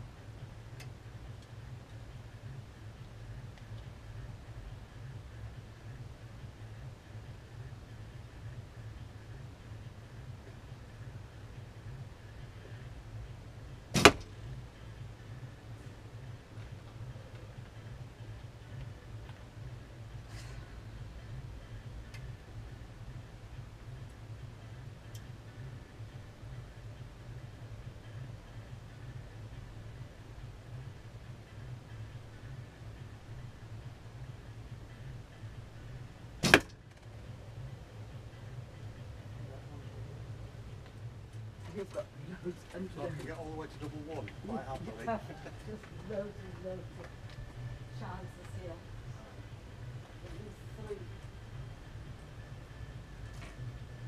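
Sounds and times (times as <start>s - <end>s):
bow string snap: 14.0s - 14.3s, 36.4s - 36.8s.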